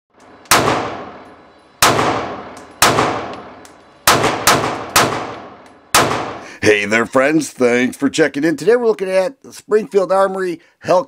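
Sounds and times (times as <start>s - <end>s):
pistol shots echoing indoors: 0.3s - 6.4s.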